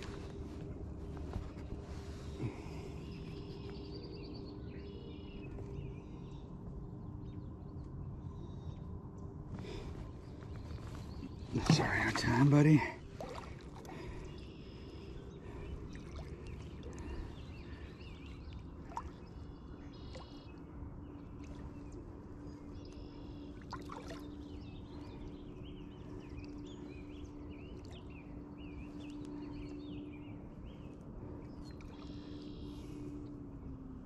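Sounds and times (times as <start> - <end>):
steady low hum: 0.0 - 34.0
birds chirping and singing: 9.6 - 33.3.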